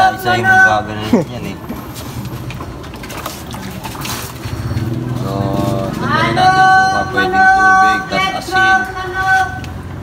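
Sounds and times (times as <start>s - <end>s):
water sloshing and splashing: 1.8s - 5.2s.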